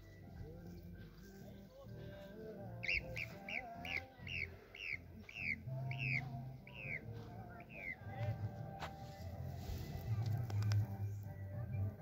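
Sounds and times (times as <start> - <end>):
background music: 0.0 - 12.0
bird chirping: 2.8 - 8.2.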